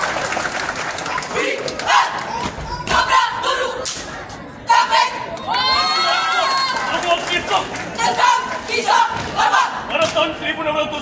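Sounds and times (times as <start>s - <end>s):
marching squad shouting: 1.2s - 3.8s, 4.7s - 5.8s, 8.0s - 10.0s.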